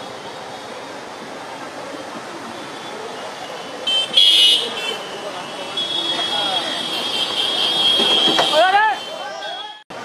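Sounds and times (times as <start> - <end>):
traffic noise: 0.0 - 10.0
voices of procession: 0.0 - 10.0
vehicle horn honking: 3.9 - 9.9.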